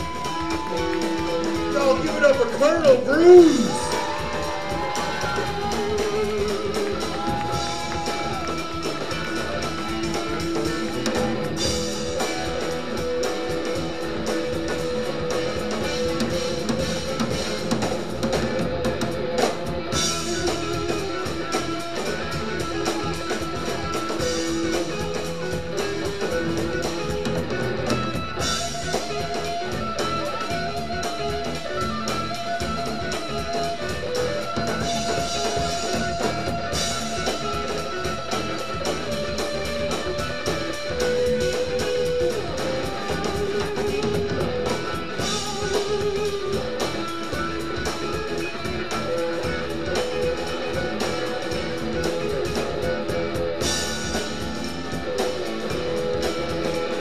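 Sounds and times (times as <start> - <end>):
bass guitar: 0.0 - 57.0
drum kit: 0.0 - 57.0
electric guitar lead: 0.0 - 57.0.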